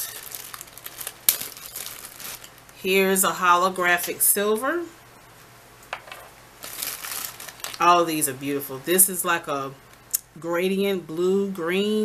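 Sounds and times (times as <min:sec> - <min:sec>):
plastic packaging crinkling: 0:00.0 - 0:02.8, 0:06.6 - 0:08.3.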